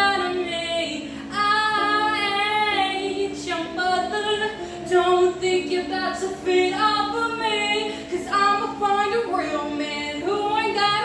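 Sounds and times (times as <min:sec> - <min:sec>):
woman singing unaccompanied: 0:00.0 - 0:11.0.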